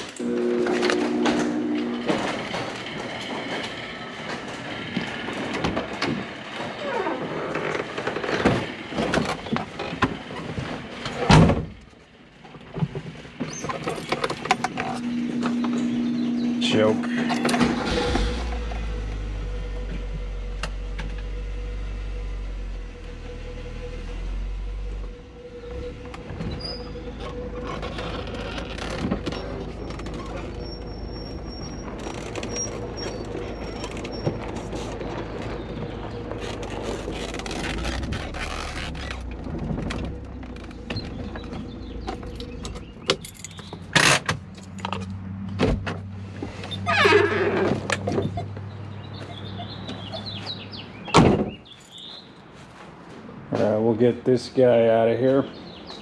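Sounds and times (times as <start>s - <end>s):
car engine starting and idling: 0.0s - 52.1s
electric buzzer tone: 0.2s - 2.8s, 15.0s - 26.2s.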